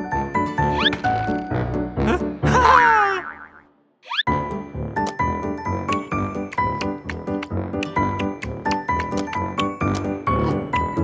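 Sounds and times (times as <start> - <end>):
background music: 0.0 - 3.2, 4.2 - 11.0.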